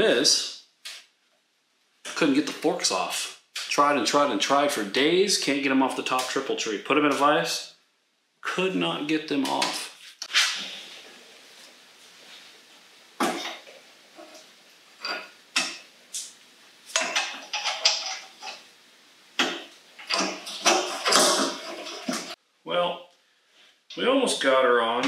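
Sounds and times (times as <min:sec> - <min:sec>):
metal tools clanking: 0:17.0 - 0:18.6.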